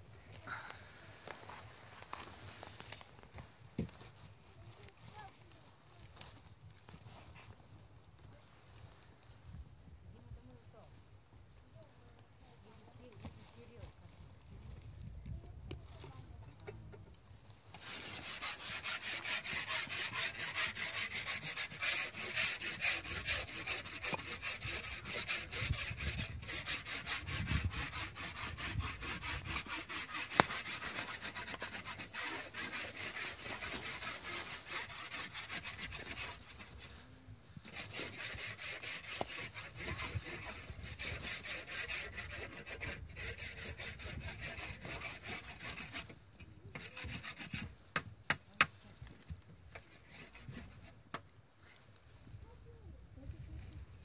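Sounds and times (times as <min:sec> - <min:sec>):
strap rubbing and scraping: 0:17.7 - 0:36.9, 0:49.7 - 0:51.0.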